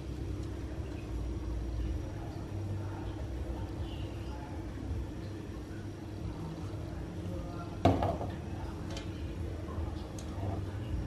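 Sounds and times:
gas burner flame hum: 0.0s - 11.0s.

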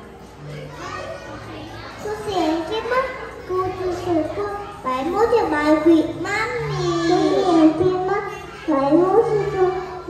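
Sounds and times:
young children talking: 0.0s - 10.0s.

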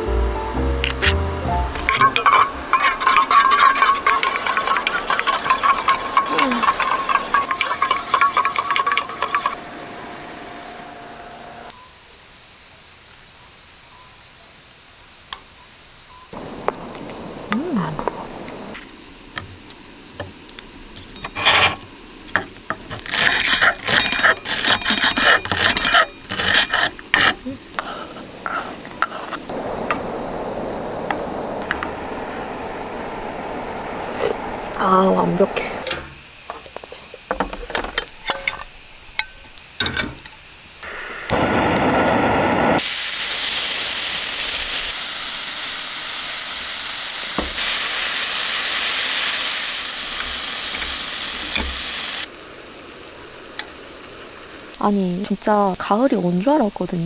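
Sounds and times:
insects chirring: 0.0s - 57.0s.

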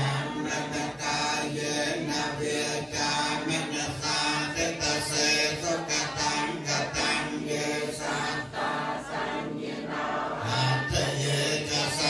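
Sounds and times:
congregation chanting in unison: 0.0s - 12.0s.

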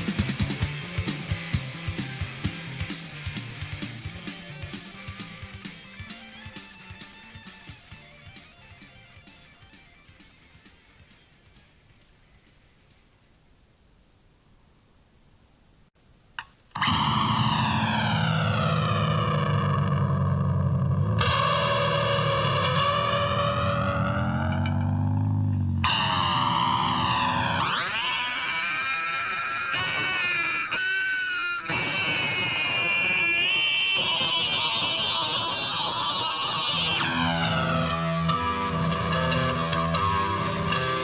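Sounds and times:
distorted electric guitar: 0.0s - 11.8s, 16.4s - 41.0s.

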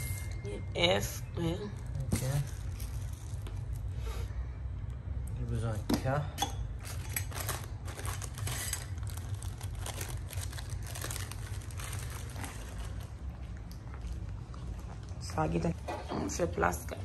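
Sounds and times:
plastic bags crinkling: 1.6s - 3.9s, 6.8s - 14.2s.

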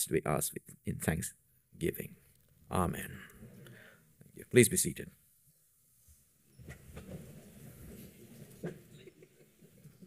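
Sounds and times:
people shuffling and rustling: 6.0s - 10.0s.

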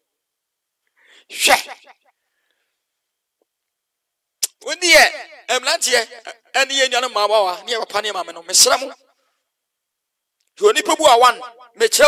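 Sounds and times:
person's loud vocal burst: 1.3s - 1.8s.

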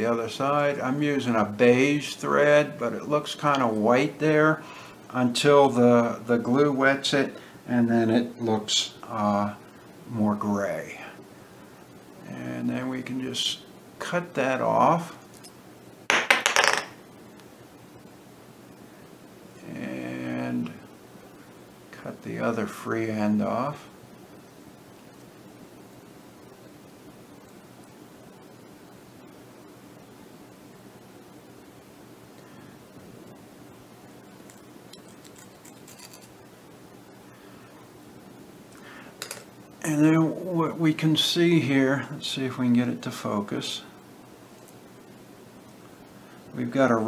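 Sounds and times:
low background hum: 0.0s - 47.0s
faint handling ticks: 34.4s - 36.4s
metal tool clattering on bench: 39.2s - 39.5s.

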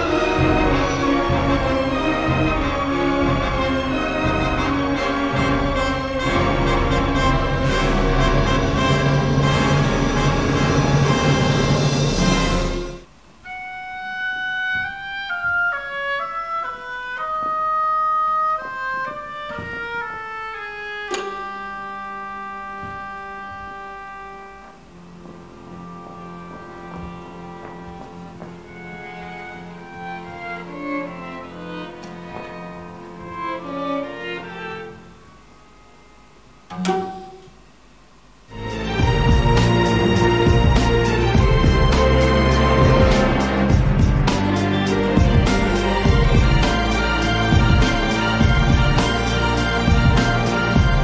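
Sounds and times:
orchestral music: 0.0s - 37.8s, 38.5s - 51.0s
solo melody over held notes: 13.4s - 37.4s.

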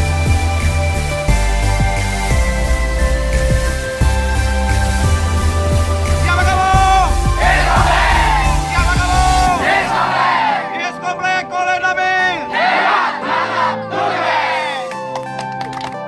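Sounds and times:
music with heavy bass beat: 0.0s - 10.7s
group shouting cheer: 6.5s - 10.8s, 12.4s - 14.9s.

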